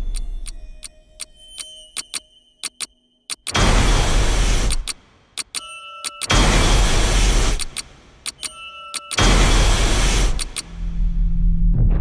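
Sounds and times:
sharp clicks: 0:00.0 - 0:06.6, 0:07.2 - 0:10.7.

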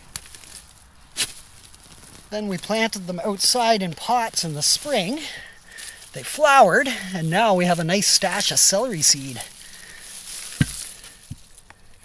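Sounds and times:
soil and roots rustling: 0:00.0 - 0:12.0
dull thump: 0:10.6 - 0:10.9.

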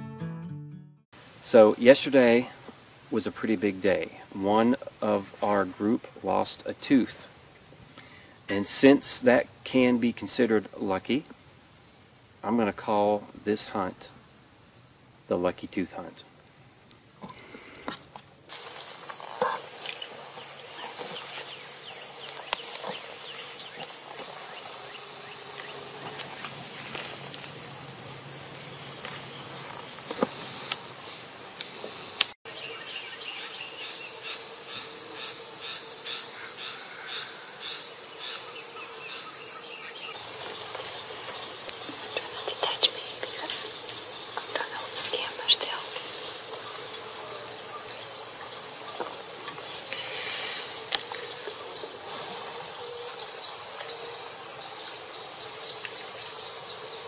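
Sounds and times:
insect chorus buzzing: 0:01.2 - 0:57.0.

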